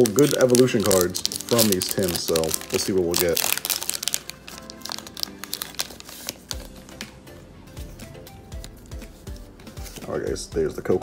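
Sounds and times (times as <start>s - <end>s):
foil wrapper crinkling: 0.0s - 6.9s
background music: 0.0s - 11.0s.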